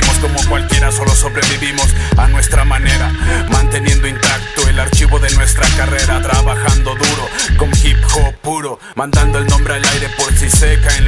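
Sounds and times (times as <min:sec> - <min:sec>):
hip hop beat with heavy bass: 0:00.0 - 0:11.0.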